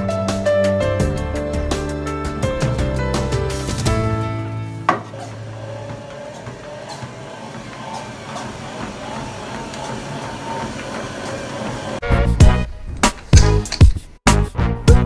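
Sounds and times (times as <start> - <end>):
treadmill belt and motor whir: 4.9 - 12.0.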